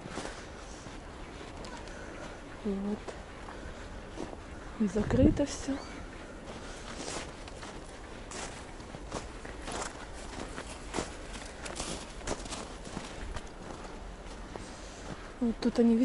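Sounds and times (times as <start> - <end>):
footsteps on snow: 0.0 - 16.0.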